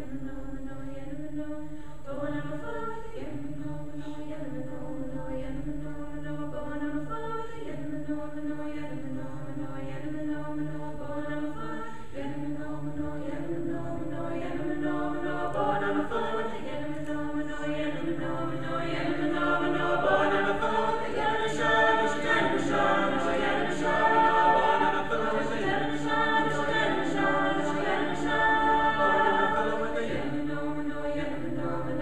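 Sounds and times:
a cappella group singing in harmony: 0.0s - 32.0s.

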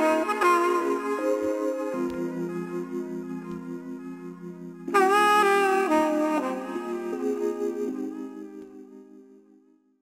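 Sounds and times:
sustained melodic background music: 0.0s - 10.0s.

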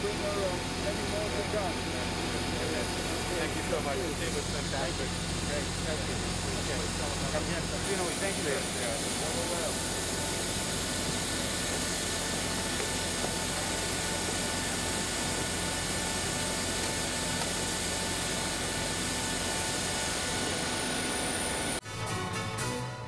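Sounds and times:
jet turbine whine and rush: 0.0s - 21.8s.

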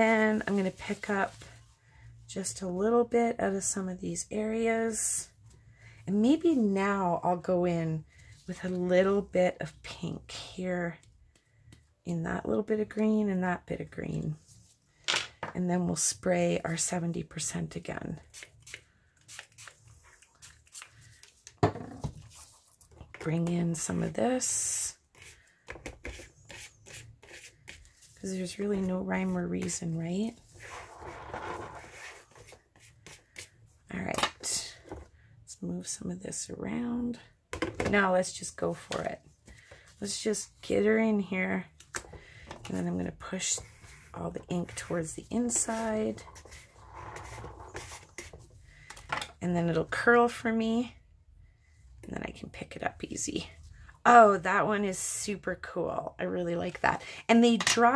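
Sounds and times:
plastic card scraping a mat: 30.4s - 33.5s, 45.7s - 48.4s.

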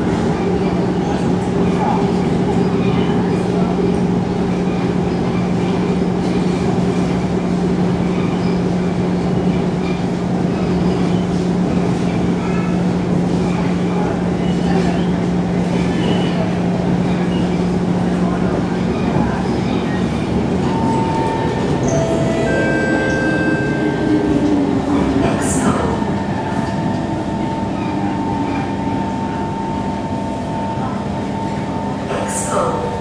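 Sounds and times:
train wheels on rail: 0.0s - 33.0s
train whining tones: 20.4s - 33.0s
steady high tone: 20.6s - 30.1s.

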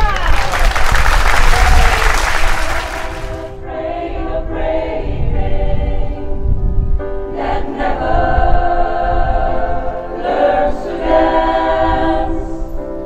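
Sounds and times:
women's choir singing: 2.8s - 6.4s, 7.2s - 13.0s.

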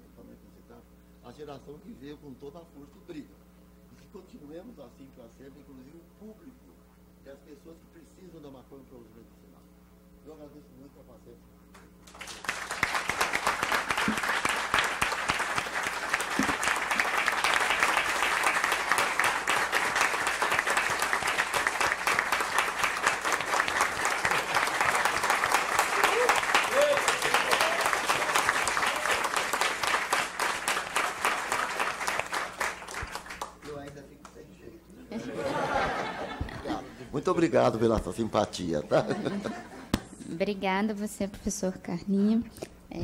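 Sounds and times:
audience applause: 12.0s - 33.8s.

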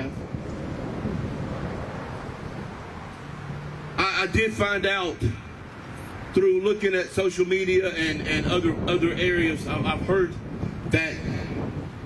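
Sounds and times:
wind on microphone: 0.0s - 3.7s, 7.5s - 12.0s.

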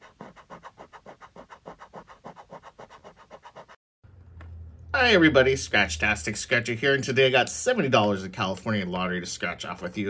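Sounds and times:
rapid rhythmic scratching: 0.0s - 3.8s.

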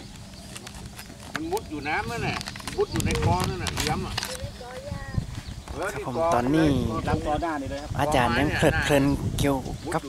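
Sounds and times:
voices talking quietly: 0.0s - 10.0s.

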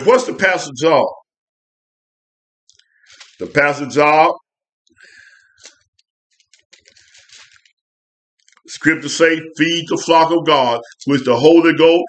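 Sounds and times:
thin paper pages rustling: 2.9s - 3.8s, 5.5s - 7.8s.

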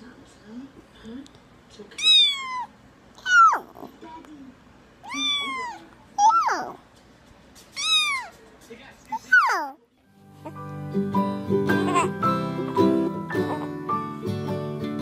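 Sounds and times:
cat meowing: 2.0s - 3.7s, 5.0s - 6.8s, 7.8s - 8.4s.

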